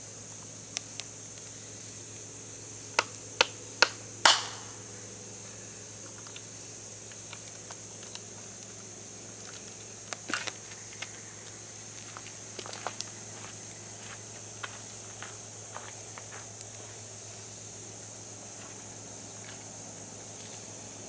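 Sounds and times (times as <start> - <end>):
campfire crackling and popping: 0.2 - 5.0, 5.9 - 18.6.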